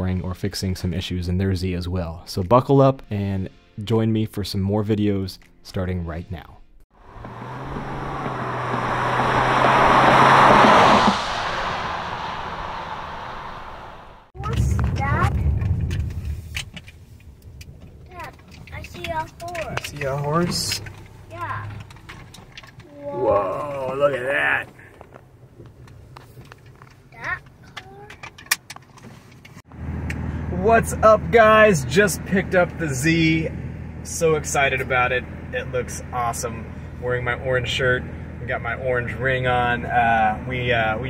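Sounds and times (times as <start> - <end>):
car passing by: 7.0 - 14.4.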